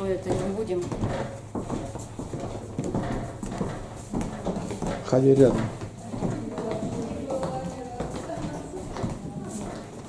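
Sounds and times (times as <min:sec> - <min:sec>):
footsteps on hard floor: 0:00.0 - 0:10.0.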